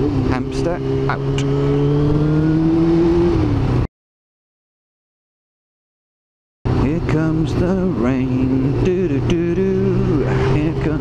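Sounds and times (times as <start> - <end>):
motorcycle engine revving: 0.0 - 3.9, 6.7 - 11.0.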